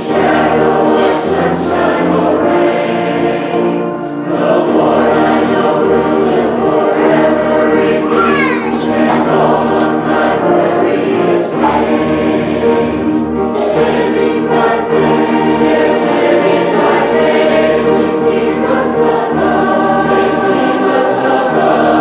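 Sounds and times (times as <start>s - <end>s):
youth choir singing: 0.0s - 22.0s.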